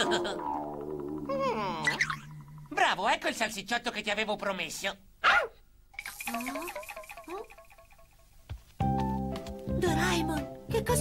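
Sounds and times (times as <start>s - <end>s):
cartoon dog whining: 0.0s - 2.4s, 5.2s - 5.6s
soft background music: 8.8s - 11.0s.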